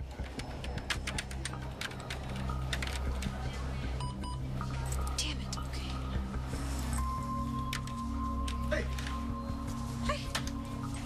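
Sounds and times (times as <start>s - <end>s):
fast keyboard typing: 0.1s - 3.5s.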